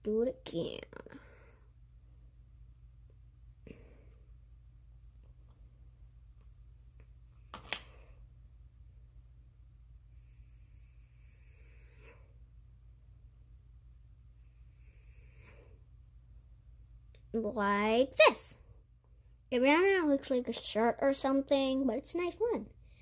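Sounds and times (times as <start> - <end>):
steady low hum: 0.0 - 23.0
faint breathing: 1.0 - 1.9, 3.6 - 4.4, 10.0 - 12.5, 14.2 - 16.0, 22.8 - 23.0.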